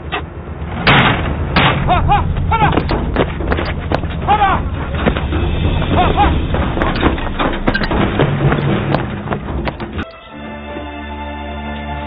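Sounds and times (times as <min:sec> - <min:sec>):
heavy low rumble: 0:00.0 - 0:10.0
running footsteps thudding: 0:02.7 - 0:10.1
man shouting: 0:04.3 - 0:04.6.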